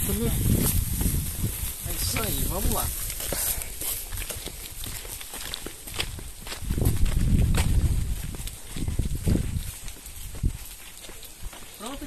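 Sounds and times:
footsteps on sand: 0:00.0 - 0:12.0.

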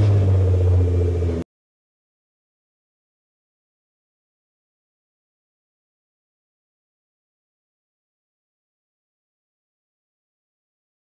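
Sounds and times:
car engine running: 0:00.0 - 0:01.4.

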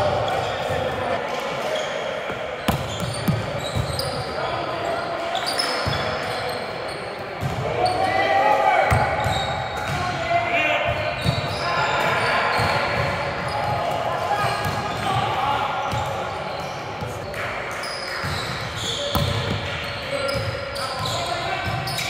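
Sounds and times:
players shouting in echoing gym: 0:00.0 - 0:22.0.

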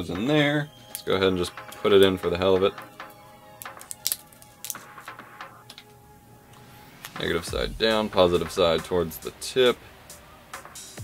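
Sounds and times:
quiet background music: 0:00.0 - 0:11.0.

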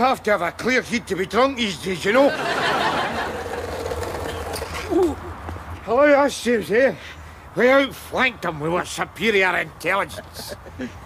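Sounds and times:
skateboard wheels rolling on asphalt: 0:02.5 - 0:04.9.

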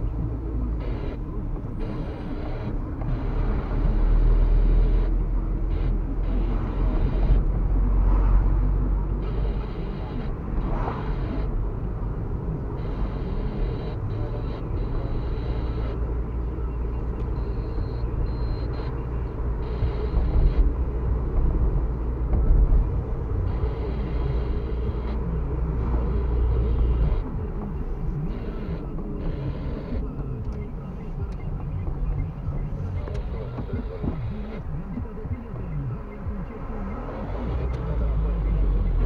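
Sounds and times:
car engine and tyre rumble: 0:00.0 - 0:39.0.

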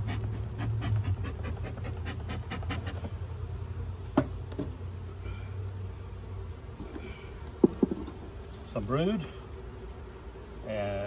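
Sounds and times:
bellows puffing air: 0:00.0 - 0:03.2, 0:06.8 - 0:08.4.

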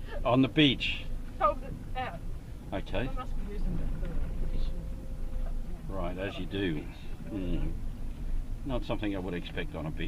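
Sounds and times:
car engine and tyre rumble: 0:00.0 - 0:10.0.

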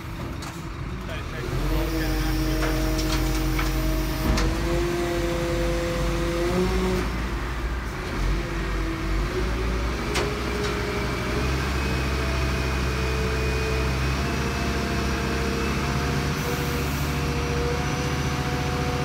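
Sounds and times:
diesel engine running: 0:00.0 - 0:19.0.

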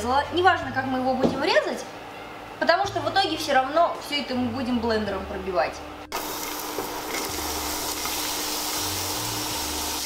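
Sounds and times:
onion sizzling in oil: 0:06.1 - 0:10.0.

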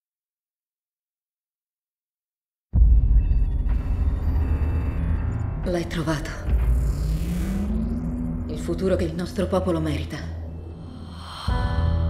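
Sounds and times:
deep cinematic drone: 0:02.8 - 0:12.0.

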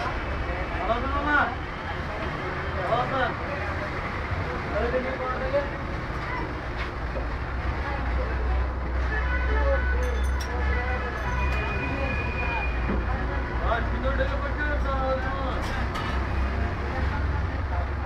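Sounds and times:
street traffic rumble: 0:00.0 - 0:18.0.

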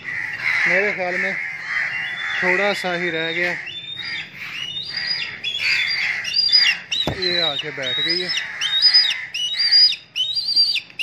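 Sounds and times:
kites calling: 0:04.6 - 0:08.3.

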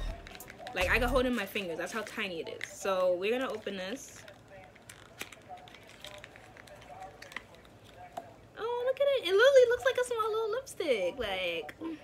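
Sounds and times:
package opening clicks and rustles: 0:00.1 - 0:00.9, 0:03.4 - 0:08.3.

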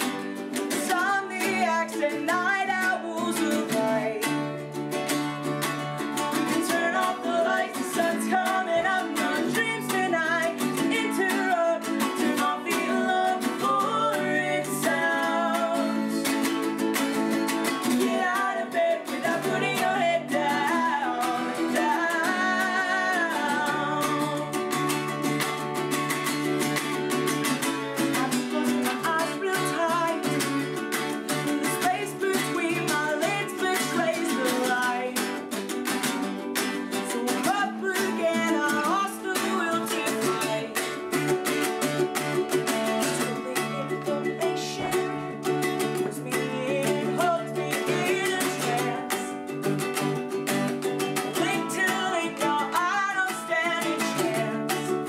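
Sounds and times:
acoustic guitar strumming: 0:00.0 - 0:55.0
ukulele strumming: 0:00.0 - 0:55.0
woman singing: 0:00.0 - 0:55.0.

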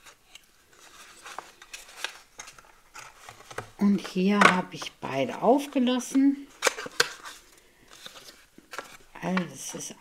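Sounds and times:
rustling of card and paper: 0:00.0 - 0:10.0.

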